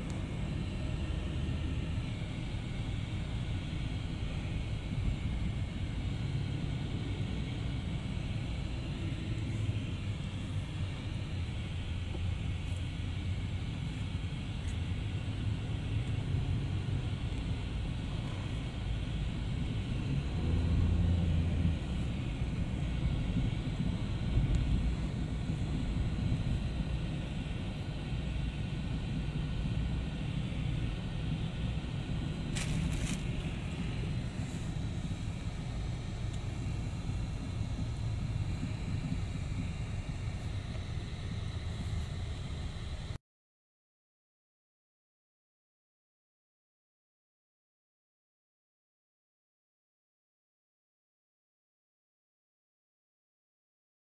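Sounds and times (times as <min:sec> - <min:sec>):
car engine and tyres rumbling: 0:00.0 - 0:43.1.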